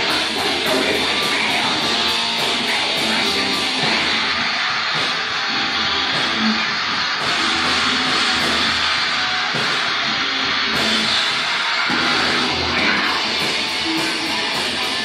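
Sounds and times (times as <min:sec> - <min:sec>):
distorted electric guitar: 0:00.0 - 0:15.0
heavy metal band playing: 0:00.0 - 0:15.0.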